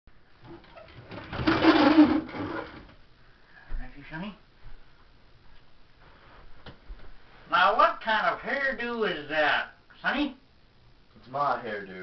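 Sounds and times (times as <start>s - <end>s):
wooden door scraping open: 0.5s - 3.0s.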